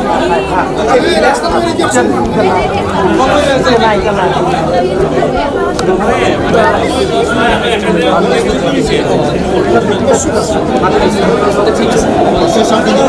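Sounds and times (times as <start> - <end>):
people talking over one another: 0.0 - 13.0.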